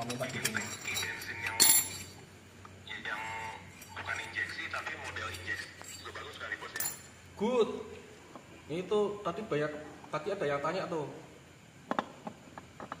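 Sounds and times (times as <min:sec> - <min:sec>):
metallic clinks of metal parts: 0:00.0 - 0:02.2, 0:05.2 - 0:07.1.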